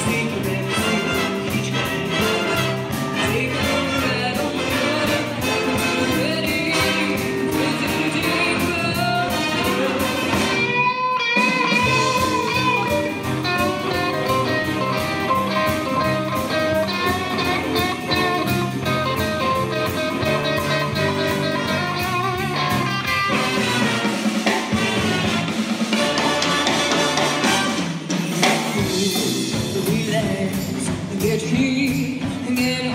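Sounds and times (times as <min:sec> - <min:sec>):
woman singing: 0:00.0 - 0:13.1, 0:28.9 - 0:32.9
electric guitar: 0:00.0 - 0:27.6
big band playing: 0:00.0 - 0:32.9
drum kit: 0:00.0 - 0:32.9.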